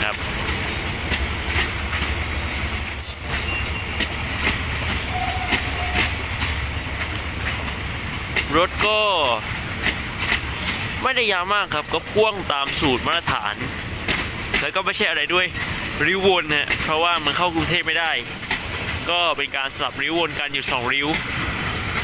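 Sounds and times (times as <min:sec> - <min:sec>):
train coaches rumbling past: 0:00.0 - 0:22.0
wheels clacking over rail joints: 0:00.0 - 0:22.0.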